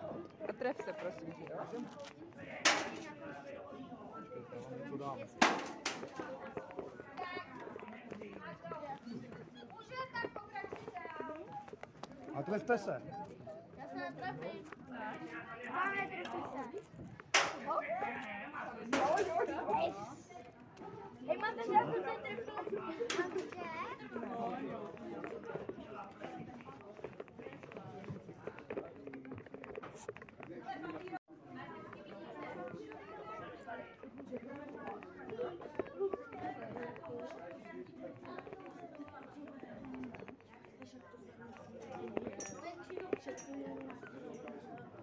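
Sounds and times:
people chattering: 0.0 - 45.0
people talking: 0.0 - 45.0.

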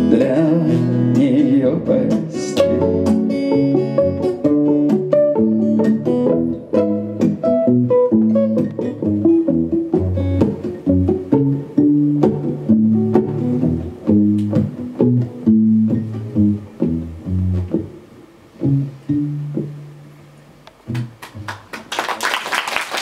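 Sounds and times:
guitars playing: 0.0 - 21.7.

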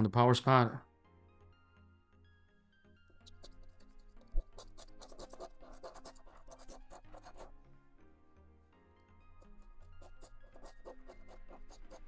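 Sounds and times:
soft background music: 0.0 - 12.0
coin scraping a scratch card: 3.2 - 7.5, 9.4 - 12.0.

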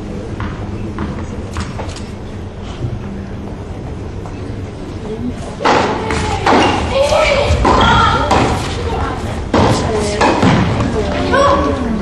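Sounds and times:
tennis ball hit by rackets: 5.6 - 6.9, 7.5 - 8.7.

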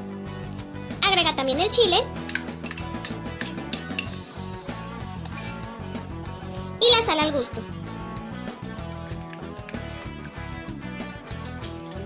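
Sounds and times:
music with steady beat: 2.0 - 6.9, 7.6 - 12.0
spatula scraping glass bowl: 5.3 - 5.7.

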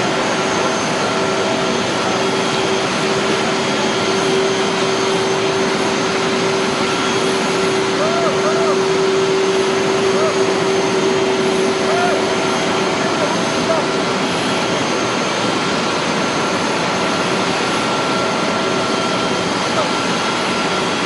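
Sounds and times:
jet engine running: 0.0 - 21.0
faint voices: 7.8 - 14.3.

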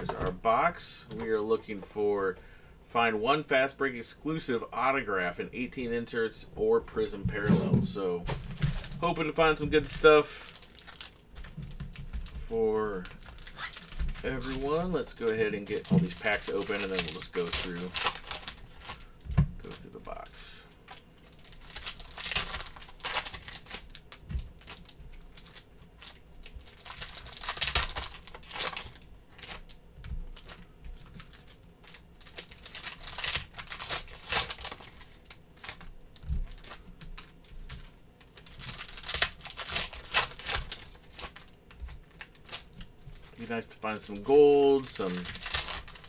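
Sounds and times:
foil wrappers tearing and crinkling: 8.3 - 46.0.

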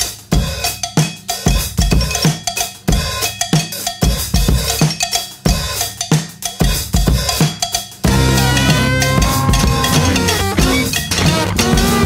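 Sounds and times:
drum kit playing a beat: 0.0 - 12.0.

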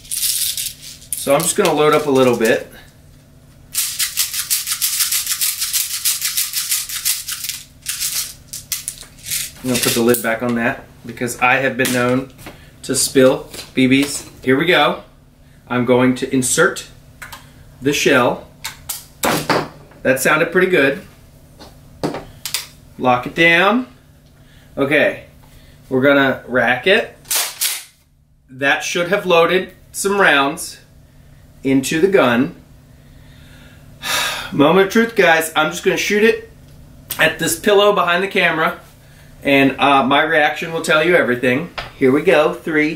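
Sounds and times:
plastic pellets rattling into shell: 0.0 - 2.5, 3.7 - 10.2.

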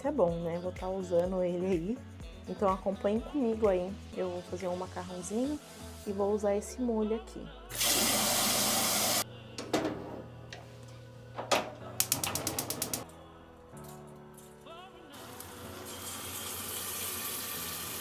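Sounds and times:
soft background music: 0.0 - 18.0
kitchen clicks and clatter: 11.4 - 13.0
tap spraying water into pot: 12.0 - 13.0.

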